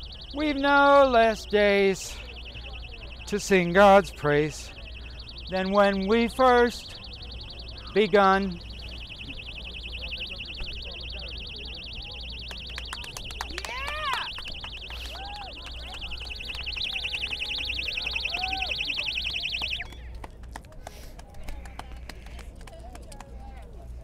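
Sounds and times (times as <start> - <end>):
electronic alarm bell ringing: 0.0 - 19.8.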